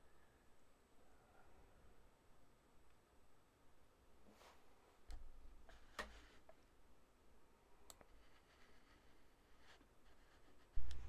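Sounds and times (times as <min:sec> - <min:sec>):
soft clicks: 0:07.8 - 0:08.2.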